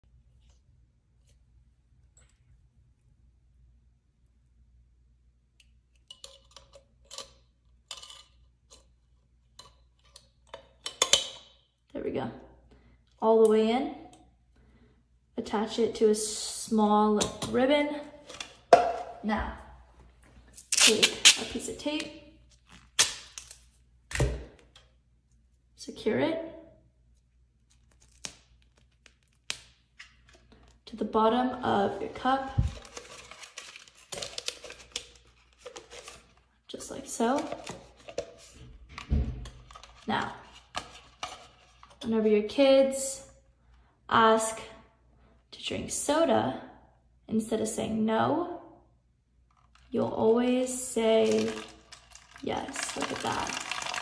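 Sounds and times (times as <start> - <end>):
plastic cup and tape crinkling: 20.4 - 23.8, 27.6 - 30.8, 31.9 - 36.6, 37.3 - 38.7, 50.7 - 54.0.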